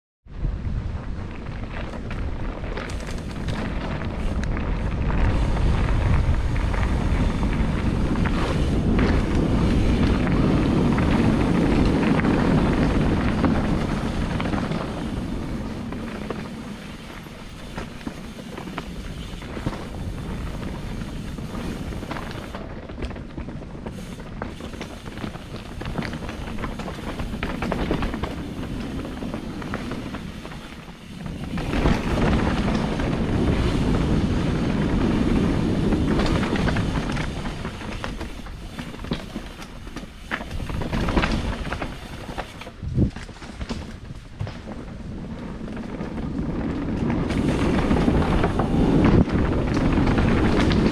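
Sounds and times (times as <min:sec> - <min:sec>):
wind rushing over microphone: 0:00.2 - 0:50.9
bike tyres rolling: 0:00.3 - 0:50.9
bike rattling over bumps: 0:00.4 - 0:50.9.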